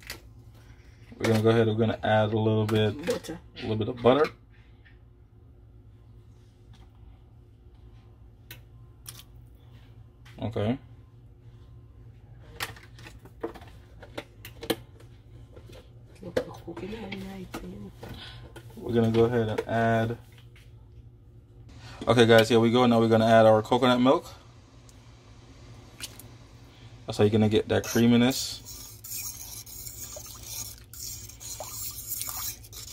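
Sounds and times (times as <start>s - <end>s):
steady low hum: 0.0s - 32.9s.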